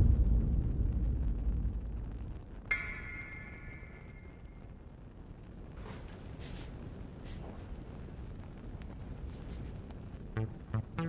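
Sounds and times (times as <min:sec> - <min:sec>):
sharp metallic ping: 0:02.7 - 0:04.7.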